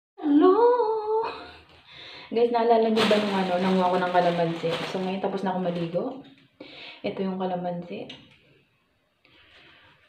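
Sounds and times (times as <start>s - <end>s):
woman humming: 0.2s - 1.5s.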